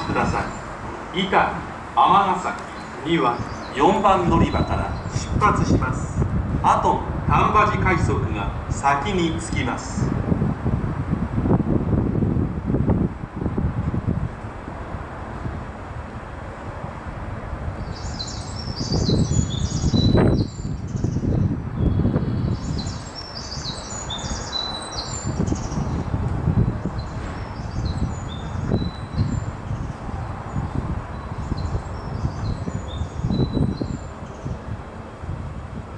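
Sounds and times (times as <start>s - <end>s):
birds chirping: 0.0s - 9.8s, 17.8s - 34.7s
low rumbling noise in gusts: 0.0s - 35.9s.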